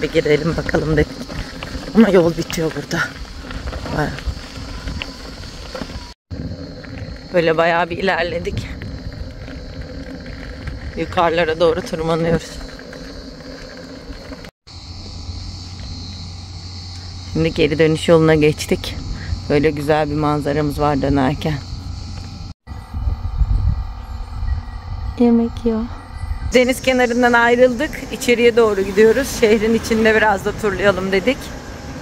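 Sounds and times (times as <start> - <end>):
tyre noise: 0.0 - 14.5
wind buffeting microphone: 0.0 - 14.5, 17.1 - 32.0
car engine rumble: 12.3 - 32.0.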